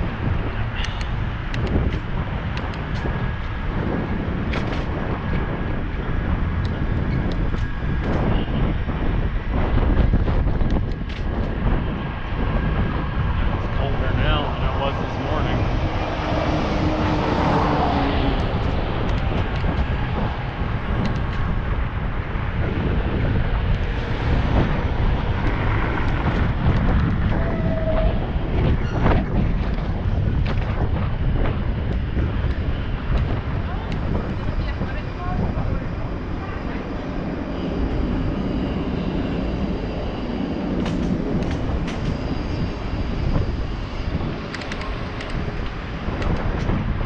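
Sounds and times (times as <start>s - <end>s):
road rumble: 0.0s - 47.0s
wind buffeting camera: 0.0s - 47.0s
rattles and clicks: 40.8s - 42.4s, 44.5s - 46.8s.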